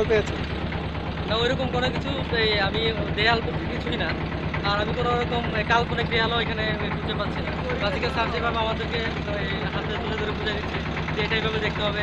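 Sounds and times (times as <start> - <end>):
man talking: 0.0 - 0.5, 1.3 - 12.0
boat engine drone: 0.0 - 12.0.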